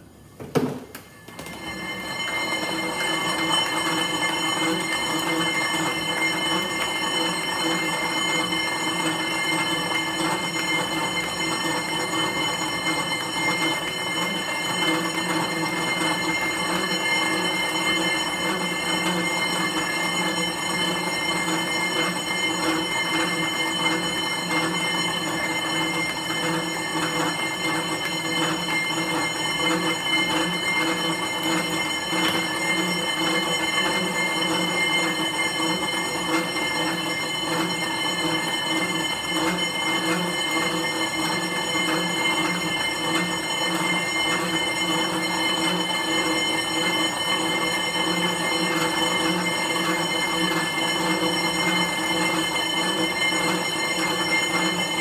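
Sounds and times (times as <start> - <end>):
exercise bike whirring: 0.0 - 55.0.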